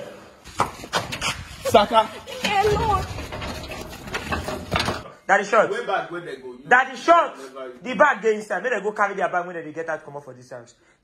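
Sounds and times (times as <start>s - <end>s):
sheet-metal gate rattling: 2.4s - 5.1s.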